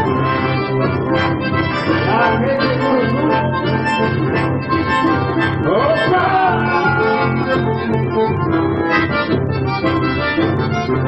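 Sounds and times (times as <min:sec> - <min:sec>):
accordion and bandoneon playing: 0:00.0 - 0:11.0
electric bass line: 0:00.0 - 0:11.0.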